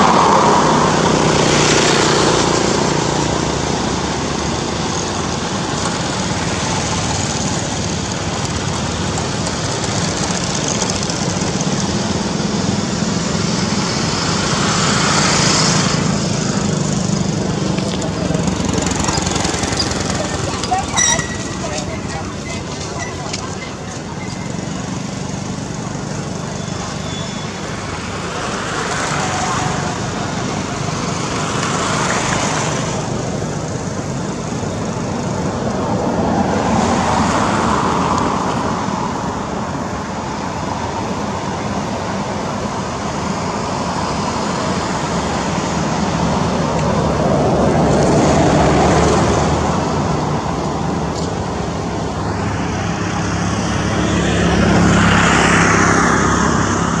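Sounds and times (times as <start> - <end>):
passing vehicles: 0.0 - 57.0.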